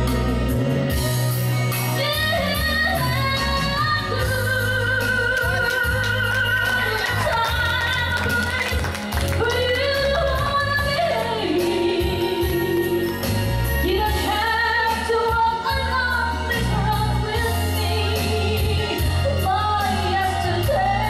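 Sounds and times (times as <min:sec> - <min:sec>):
instrumental accompaniment: 0:00.0 - 0:21.0
woman singing into a microphone: 0:01.7 - 0:21.0.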